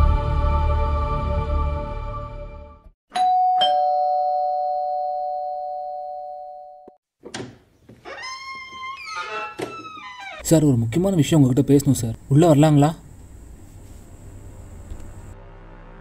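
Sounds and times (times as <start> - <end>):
two-tone doorbell chime: 3.1 - 7.0.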